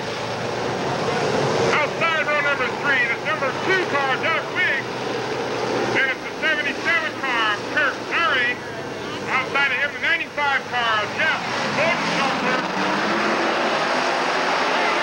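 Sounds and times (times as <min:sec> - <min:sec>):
race car engines droning: 0:00.0 - 0:15.0
announcer over loudspeakers: 0:01.8 - 0:04.9, 0:06.0 - 0:12.7.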